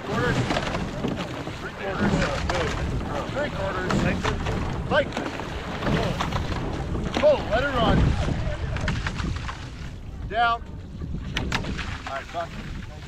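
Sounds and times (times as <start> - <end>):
oar knocks: 0.0 - 9.9, 11.2 - 12.9
water rushing past boat: 0.0 - 13.0
wind buffeting microphone: 0.0 - 13.0.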